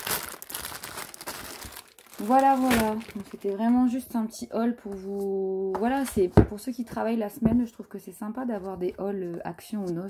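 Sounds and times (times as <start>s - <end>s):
plastic packet crinkling: 0.0s - 4.1s.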